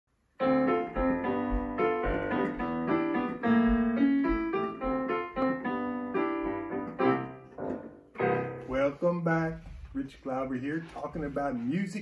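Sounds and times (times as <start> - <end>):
digital piano playing: 0.4 - 9.2.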